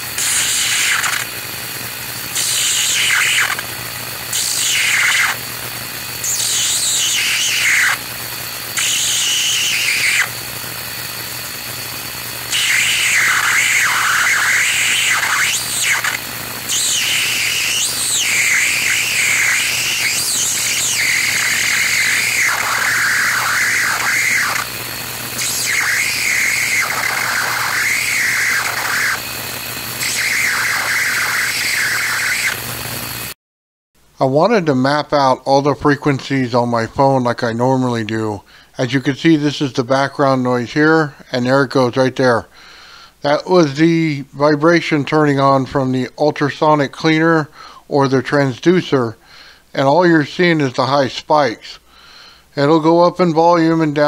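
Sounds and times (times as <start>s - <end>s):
steady low hum: 0.0s - 33.4s
tesla coil spark squealing: 0.0s - 33.4s.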